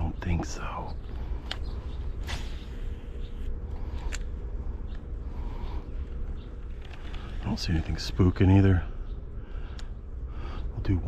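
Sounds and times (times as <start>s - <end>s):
sharp clicks and rustles: 6.3s - 8.1s.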